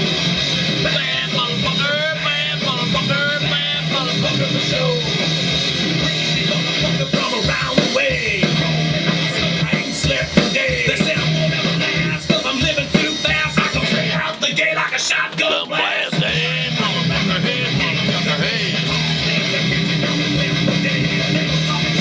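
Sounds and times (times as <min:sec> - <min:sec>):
guitar: 0:00.0 - 0:22.0
person singing: 0:00.8 - 0:05.2, 0:06.2 - 0:22.0.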